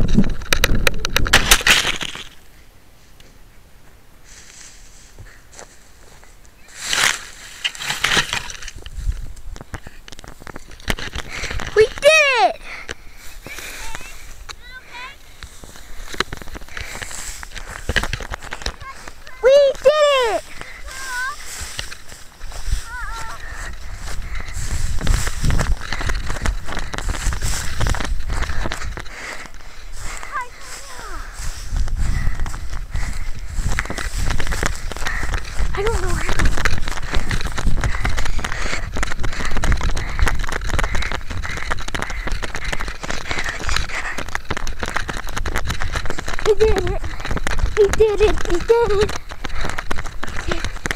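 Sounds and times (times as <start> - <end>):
wind on microphone: 0.0 - 1.4, 8.6 - 9.8, 20.4 - 29.2, 31.1 - 50.9
dry grass rustling and crackling: 0.0 - 50.9.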